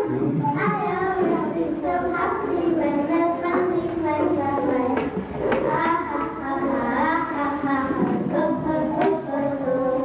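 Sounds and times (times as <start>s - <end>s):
young children singing: 0.0s - 10.0s.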